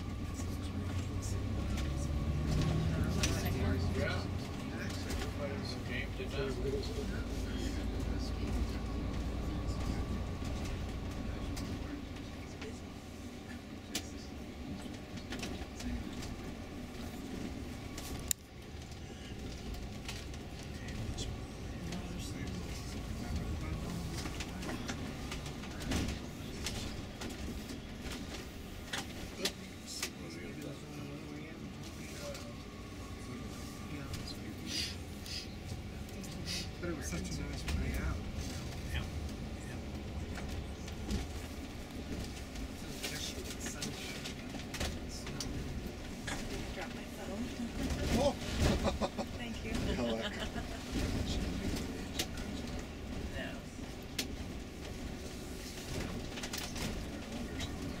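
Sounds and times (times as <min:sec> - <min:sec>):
coach engine and road rumble: 0:00.0 - 0:58.0.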